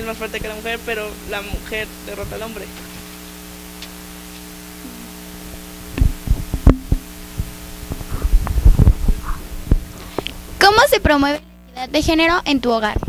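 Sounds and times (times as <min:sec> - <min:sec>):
electrical hum: 0:00.0 - 0:13.0
microphone handling thumps: 0:03.8 - 0:10.6.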